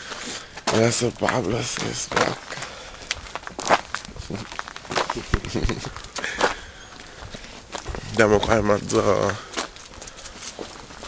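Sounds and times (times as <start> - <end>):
footsteps on dry leaves: 0.0 - 11.0
rustles: 0.0 - 11.0.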